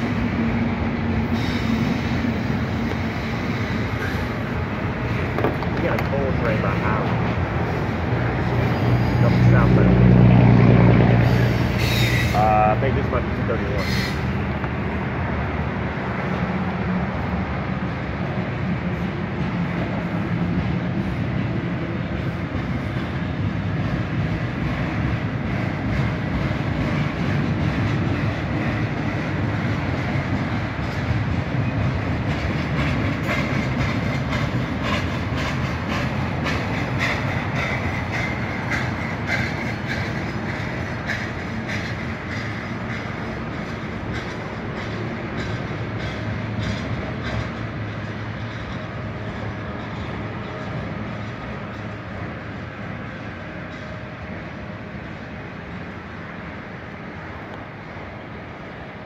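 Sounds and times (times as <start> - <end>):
clickety-clack over rail joints: 0.0 - 59.0
freight train wheels rumbling: 0.0 - 59.0.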